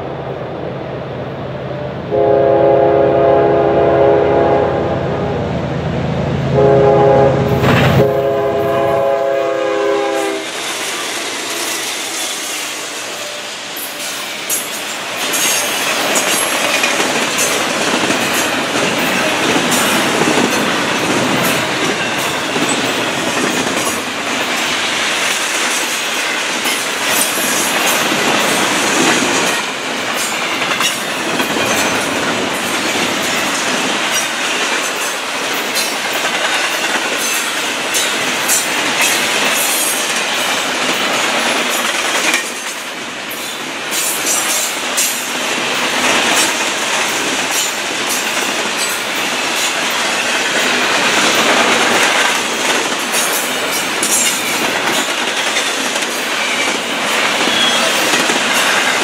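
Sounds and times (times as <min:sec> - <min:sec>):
freight train wheels rumbling: 0:00.0 - 0:59.0
wheels clicking over rail joints: 0:13.8 - 0:42.9, 0:43.9 - 0:59.0.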